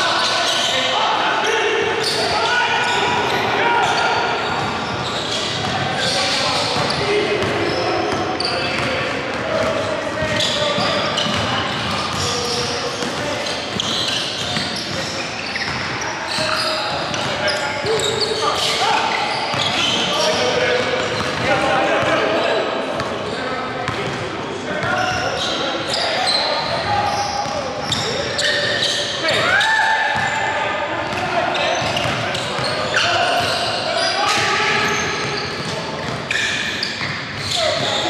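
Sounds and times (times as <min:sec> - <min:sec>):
players calling out: 0:00.0 - 0:23.5, 0:24.6 - 0:38.0.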